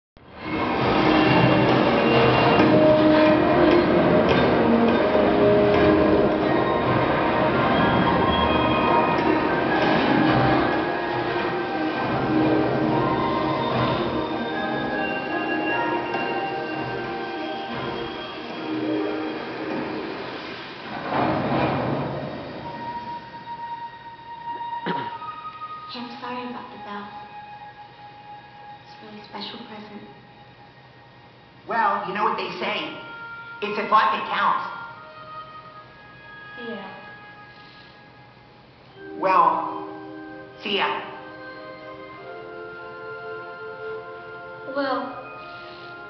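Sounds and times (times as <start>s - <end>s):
loud noisy rush: 0.2s - 23.5s
steady high tone: 0.2s - 46.0s
film soundtrack music: 0.3s - 46.0s
steam hissing from locomotive: 7.0s - 23.7s, 45.2s - 46.0s.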